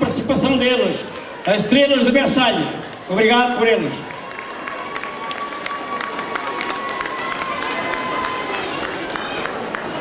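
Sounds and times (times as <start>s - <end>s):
crowd noise: 0.0s - 10.0s
audience clapping: 4.0s - 10.0s.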